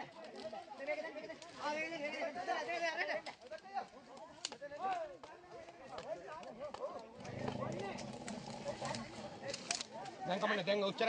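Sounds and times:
rustling: 0:07.2 - 0:10.4.

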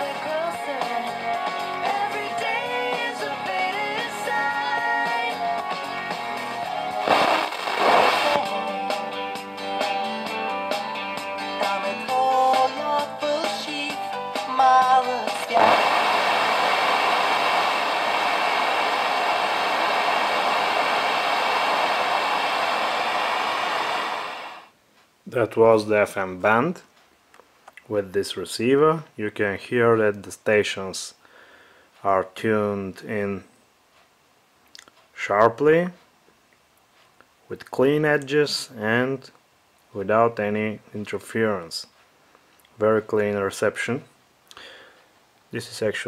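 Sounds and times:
radio static hiss: 0:06.9 - 0:08.7, 0:15.2 - 0:24.7
radio music through loudspeaker: 0:07.0 - 0:08.7, 0:14.5 - 0:24.6.

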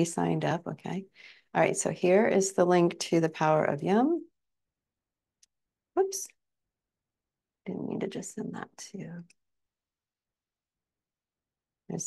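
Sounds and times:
woman speaking: 0:00.0 - 0:04.2, 0:06.0 - 0:06.3, 0:07.7 - 0:09.2.

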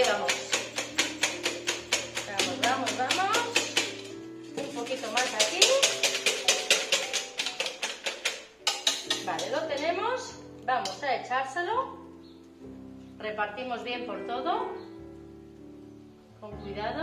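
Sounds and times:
whisk clattering in metal bowl: 0:00.0 - 0:09.8
background music: 0:00.0 - 0:17.0.

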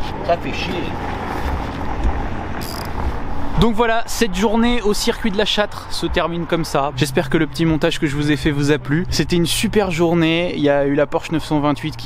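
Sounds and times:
ratchet wrench clicking: 0:02.6 - 0:03.0.

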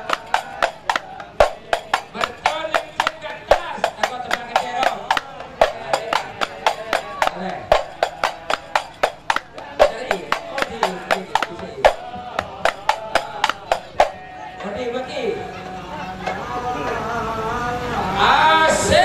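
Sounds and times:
frame drums beating: 0:00.0 - 0:14.6.

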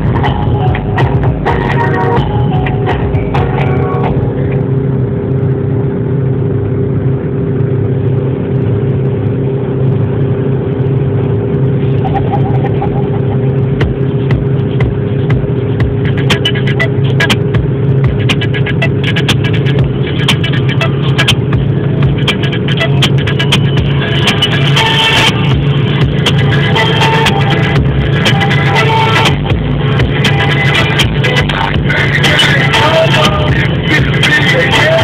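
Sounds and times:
music playing: 0:00.0 - 0:04.8, 0:11.9 - 0:35.0
car cabin drone: 0:00.0 - 0:35.0.

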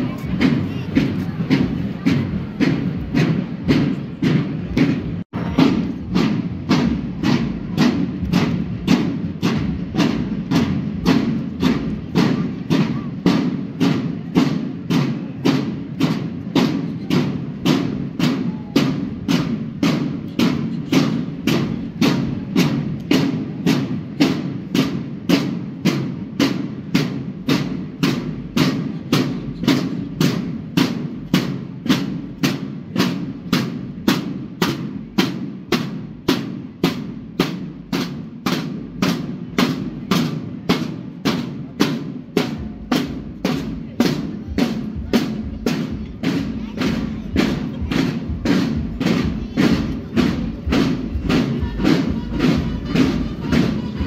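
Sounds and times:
marching band drums: 0:00.0 - 0:54.0.

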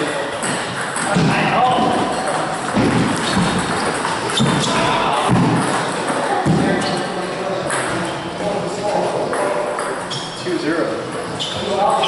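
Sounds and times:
table tennis balls clicking: 0:00.3 - 0:07.0.

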